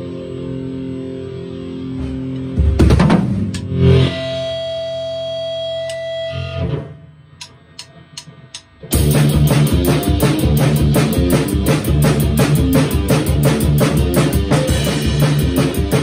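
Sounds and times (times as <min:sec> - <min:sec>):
distorted electric guitar chords: 0:00.0 - 0:16.0.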